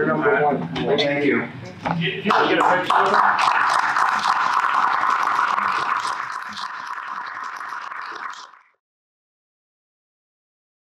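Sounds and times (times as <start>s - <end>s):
audience applauding: 2.3s - 8.6s.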